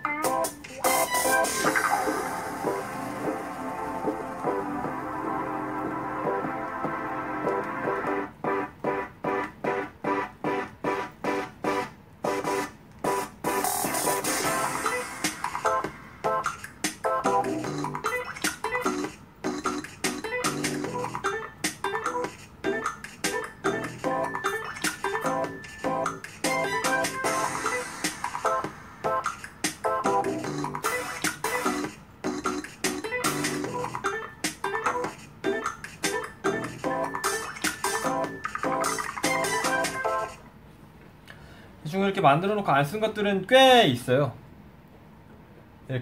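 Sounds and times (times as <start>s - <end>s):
instrumental track with steady beat: 0.0s - 40.4s.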